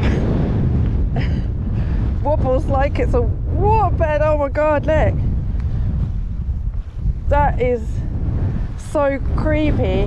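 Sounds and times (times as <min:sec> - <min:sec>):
wind blowing across microphone: 0:00.0 - 0:10.0.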